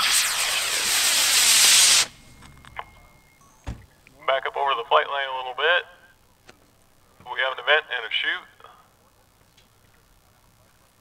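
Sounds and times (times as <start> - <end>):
rocket motor hissing: 0.0 - 2.3.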